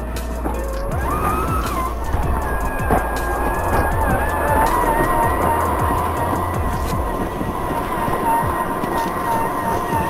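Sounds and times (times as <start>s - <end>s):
electric motor whine: 0.0s - 10.0s
music playing: 0.0s - 10.0s.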